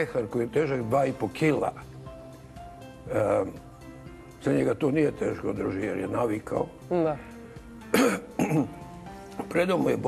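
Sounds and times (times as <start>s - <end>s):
faint background music: 0.0s - 10.0s
person coughing: 7.9s - 8.8s.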